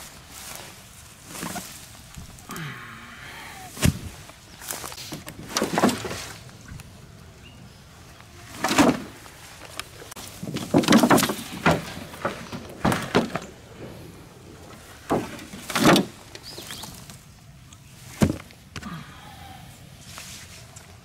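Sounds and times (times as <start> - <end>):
boards and scrap metal dropped: 3.8 - 6.4, 8.4 - 17.2, 18.1 - 18.5.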